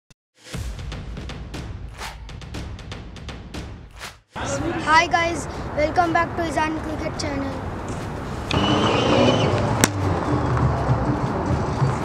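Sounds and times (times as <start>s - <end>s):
cricket bat striking ball: 9.8s - 10.1s.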